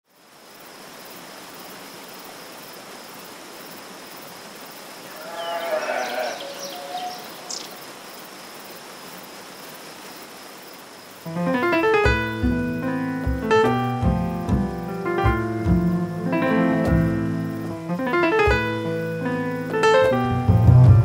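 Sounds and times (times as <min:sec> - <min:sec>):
steady background hiss: 0:00.1 - 0:21.0
sheep bleating: 0:05.1 - 0:07.2.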